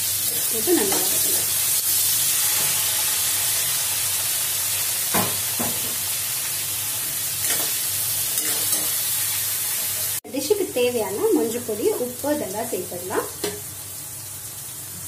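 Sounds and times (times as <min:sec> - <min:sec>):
vegetables sizzling in a pan: 0:00.0 - 0:15.0
metal spatula scraping pan: 0:08.4 - 0:09.0.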